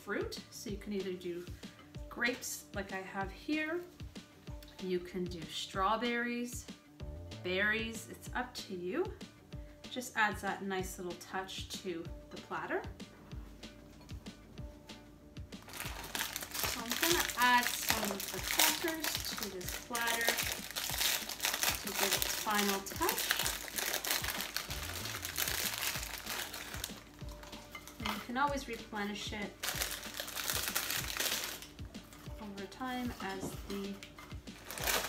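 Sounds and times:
soft background music: 0.0s - 35.0s
plastic sleeve crinkling: 15.6s - 28.3s, 29.4s - 31.8s, 34.0s - 35.0s.

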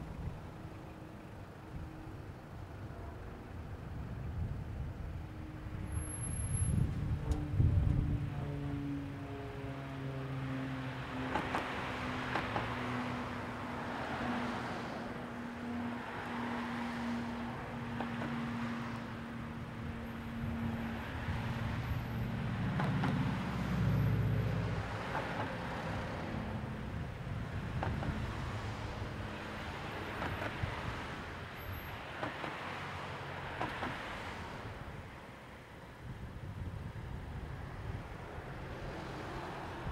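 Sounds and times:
tyre noise of passing cars: 0.0s - 39.9s
loud vehicle passing: 6.5s - 34.8s.

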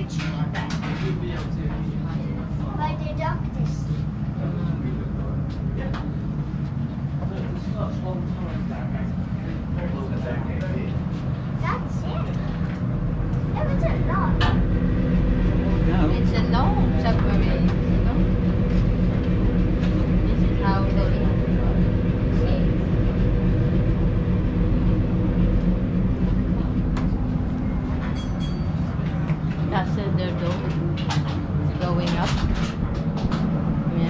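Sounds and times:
people talking: 0.0s - 6.2s, 7.2s - 11.0s, 13.5s - 14.6s, 15.5s - 18.5s, 20.1s - 22.9s, 29.0s - 32.8s
low mechanical drone: 0.0s - 34.0s.

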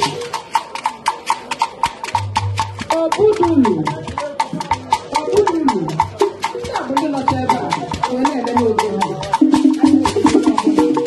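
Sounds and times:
fast knocking percussion beat: 0.0s - 11.0s.

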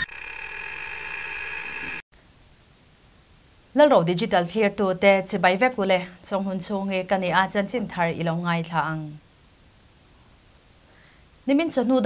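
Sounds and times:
steady electronic drone: 0.0s - 2.0s.

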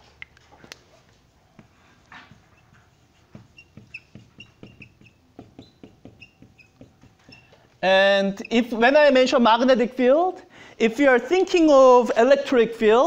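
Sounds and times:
marker tapping and squeaking: 1.5s - 8.7s.

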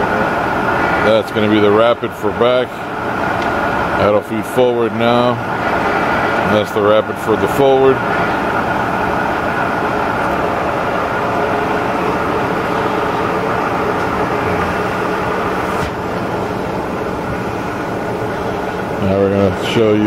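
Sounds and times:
milling machine humming: 0.0s - 20.0s.

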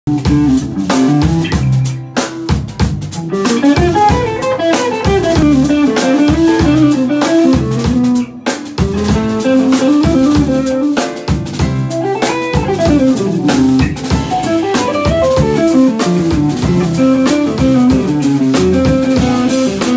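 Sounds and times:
drum kit: 0.1s - 19.9s
guitars playing melody: 0.1s - 19.9s.

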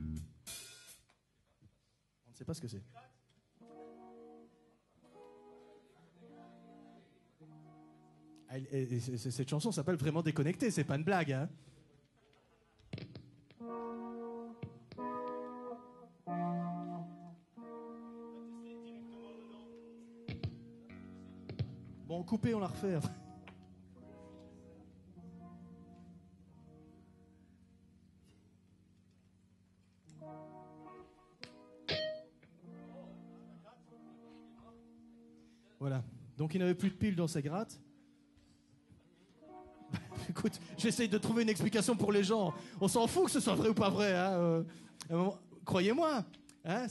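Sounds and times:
amplified organ-like chords: 3.6s - 5.6s, 13.5s - 35.5s, 39.4s - 43.8s
sharp plucks or clicks: 31.4s - 32.3s.

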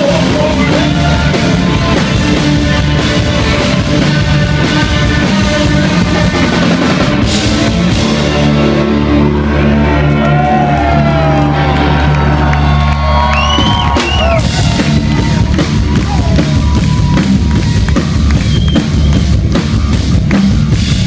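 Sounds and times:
drums fast beat: 0.0s - 8.7s, 13.0s - 21.0s
bass chord: 0.0s - 21.0s
electric guitars: 0.0s - 21.0s.

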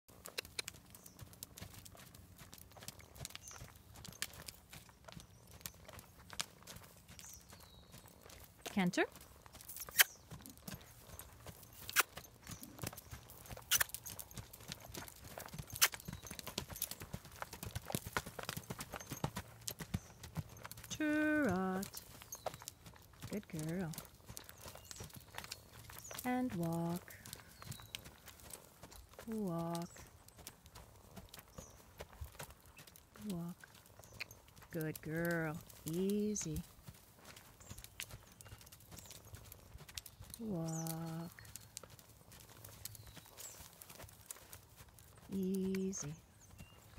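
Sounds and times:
horse hoofbeats on dirt: 0.1s - 46.9s.

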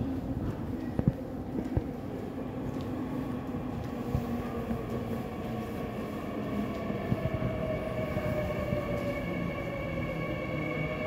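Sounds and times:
subway train wheels rumbling on rail: 0.0s - 11.0s.

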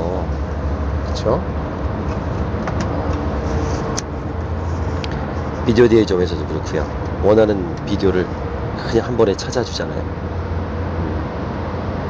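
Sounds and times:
low background rumble: 0.0s - 12.0s.

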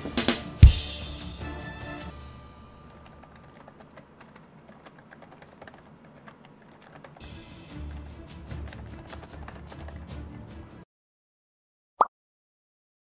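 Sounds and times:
background music with low bass: 0.0s - 2.5s
keyboard typing: 2.9s - 7.2s.

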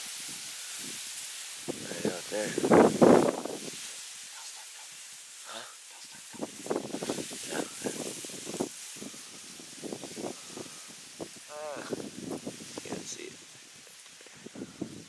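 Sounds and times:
grass brushing microphone: 0.0s - 15.0s
hushed voices talking: 4.3s - 8.1s, 11.5s - 12.0s.

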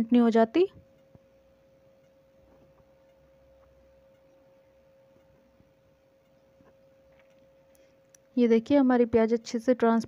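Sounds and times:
faint single-pitched hum: 0.0s - 10.0s.

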